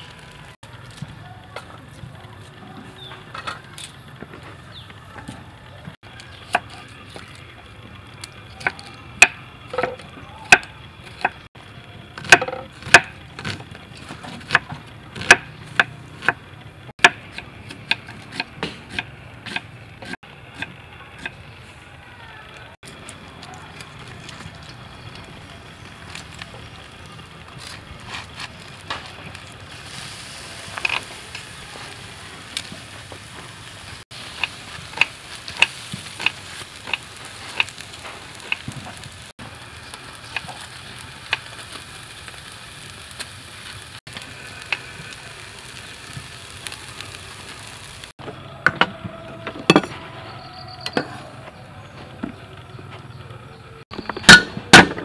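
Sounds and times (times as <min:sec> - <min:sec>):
fish sizzling on a grill: 0:00.0 - 0:48.5.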